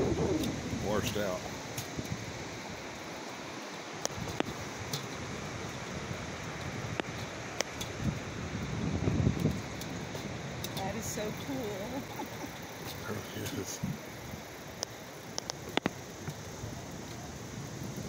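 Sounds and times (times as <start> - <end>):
wind buffeting microphone: 0.0 - 3.0, 4.1 - 12.8, 13.4 - 14.6
rail bike rolling on rails: 0.0 - 18.0
metallic clicks from wheels: 6.4 - 8.0, 9.3 - 18.0.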